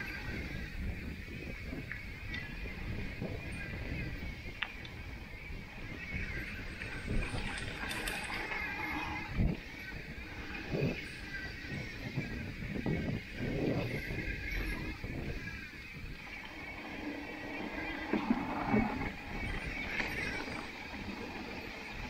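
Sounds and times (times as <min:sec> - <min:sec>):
bike tyres on gravel: 0:00.0 - 0:22.0
wind noise: 0:00.0 - 0:22.0
bike rattling and knocking: 0:05.9 - 0:12.4, 0:13.0 - 0:22.0.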